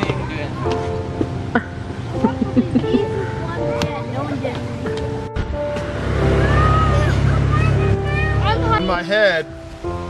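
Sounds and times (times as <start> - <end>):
loud low rumble: 5.2 - 9.0.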